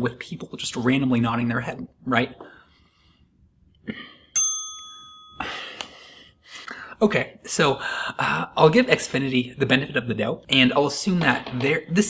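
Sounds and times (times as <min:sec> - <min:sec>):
bright bell ding: 0:04.4 - 0:05.7
breathy sigh: 0:05.4 - 0:07.0.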